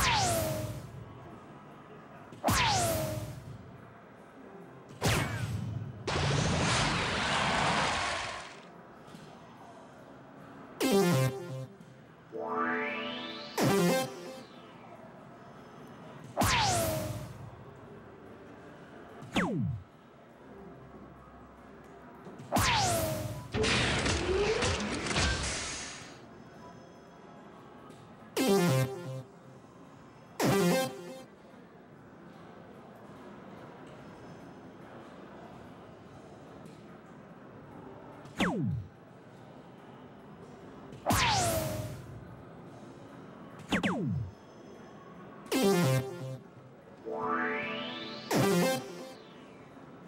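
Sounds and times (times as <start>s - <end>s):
dart machine sound effects: 10.8s - 11.8s, 12.4s - 14.7s, 16.4s - 17.4s, 28.4s - 29.3s, 30.4s - 31.2s, 41.1s - 42.0s, 43.7s - 44.3s, 45.5s - 49.7s
electronic jingle: 12.3s - 14.8s, 45.5s - 46.4s, 47.0s - 49.8s
synthesized rising sweep: 12.3s - 14.8s, 47.0s - 49.7s
electronic falling tone: 12.4s - 14.8s, 47.0s - 49.7s.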